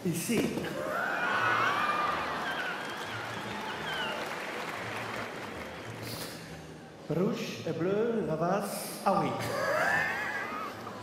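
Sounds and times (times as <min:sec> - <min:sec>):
audience applause: 0:00.8 - 0:06.2.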